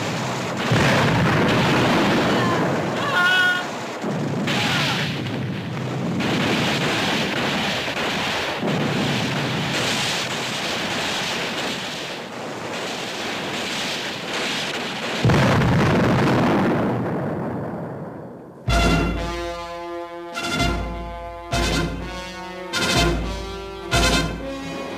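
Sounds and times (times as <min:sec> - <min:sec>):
continuous dense rumble: 0:00.0 - 0:13.7, 0:18.6 - 0:24.9
fire: 0:00.0 - 0:19.4
explosion blasts: 0:00.0 - 0:24.9.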